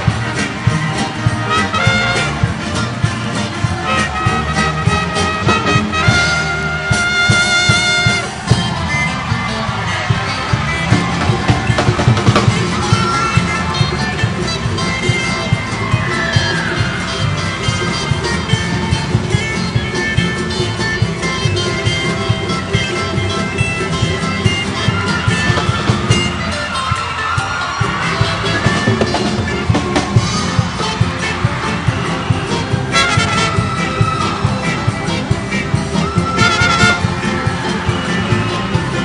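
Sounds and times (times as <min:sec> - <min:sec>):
guitars and ukuleles strumming: 0:00.0 - 0:39.0
trumpets and saxophones melody: 0:00.0 - 0:39.0.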